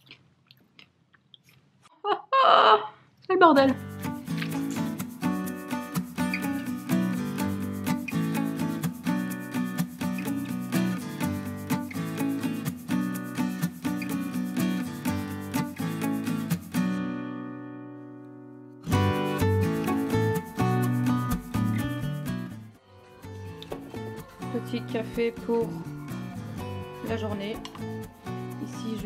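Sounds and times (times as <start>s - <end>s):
plucked acoustic guitar: 3.8s - 29.0s.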